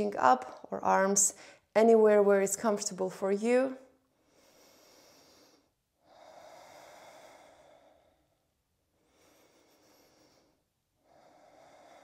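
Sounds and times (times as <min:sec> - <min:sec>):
woman breathing softly: 0:04.1 - 0:12.0.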